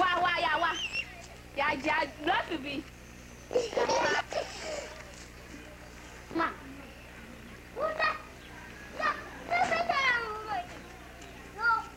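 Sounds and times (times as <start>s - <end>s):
faint low hum: 0.0s - 11.9s.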